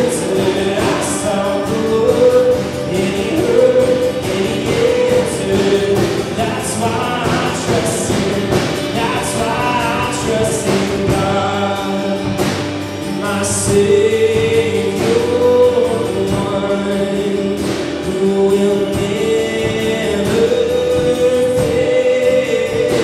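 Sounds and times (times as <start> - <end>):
man singing long notes: 0.0 - 23.0
strummed acoustic guitar: 0.0 - 23.0.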